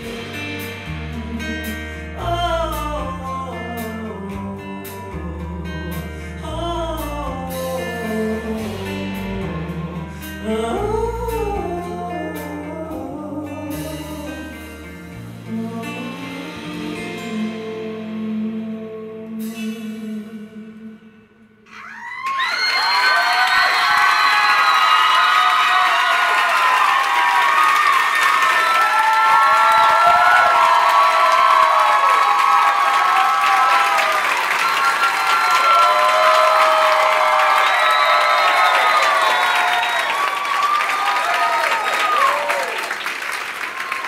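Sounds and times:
crowd shouts and whoops: 0:21.7 - 0:43.0, 0:43.6 - 0:44.0
audience clapping: 0:22.0 - 0:44.0.

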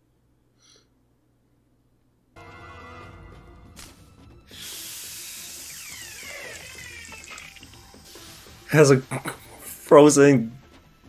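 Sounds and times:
faint background music: 0:02.4 - 0:11.0
falling whistles: 0:04.6 - 0:07.8.

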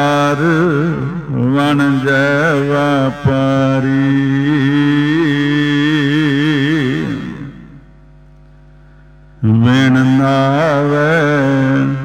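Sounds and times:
man chanting: 0:00.0 - 0:07.9, 0:09.4 - 0:12.0
steady low drone: 0:00.0 - 0:12.0.

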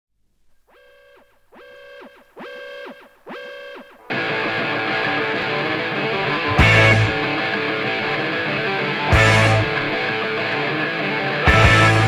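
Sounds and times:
electric guitar pitch swoops: 0:01.6 - 0:10.8.

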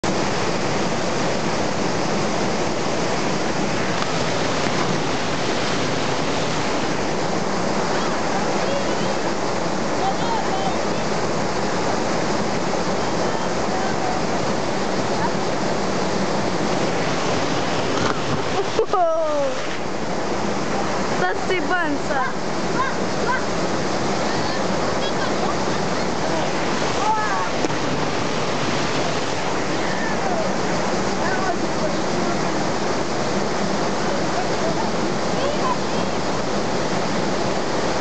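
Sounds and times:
river water rushing: 0:00.0 - 0:38.0.

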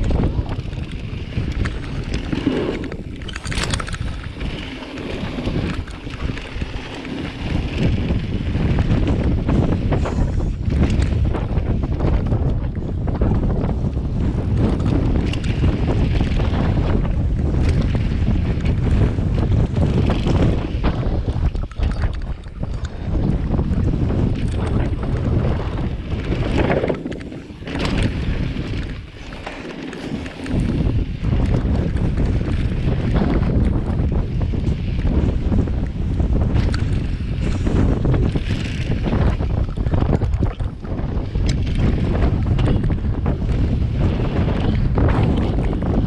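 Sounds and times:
bike rattling clicks and knocks: 0:00.0 - 0:46.0
tyres rumbling on dirt trail: 0:00.0 - 0:46.0
wind buffeting microphone: 0:00.0 - 0:46.0.

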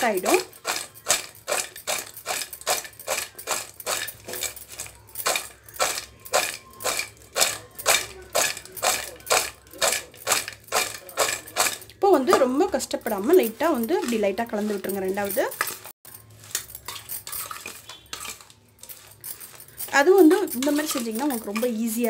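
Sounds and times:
metal spoon scraping metal bowl: 0:00.0 - 0:22.0.

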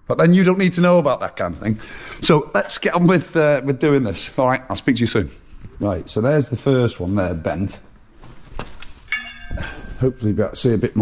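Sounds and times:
metal tube knocking and ringing: 0:09.1 - 0:10.2.

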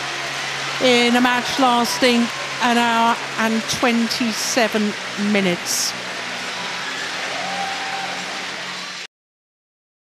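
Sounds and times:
crowd applauding: 0:00.0 - 0:09.1.

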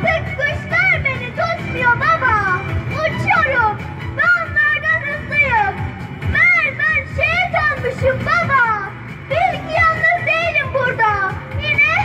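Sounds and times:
girl reciting a poem: 0:00.0 - 0:12.0.

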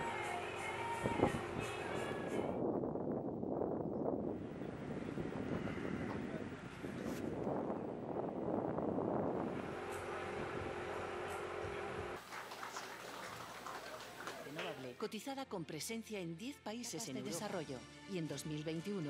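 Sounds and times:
wind buffeting microphone: 0:01.0 - 0:10.9.

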